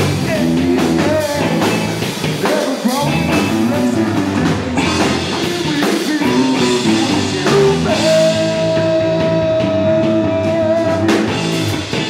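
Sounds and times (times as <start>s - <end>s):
live band playing: 0.0s - 12.0s.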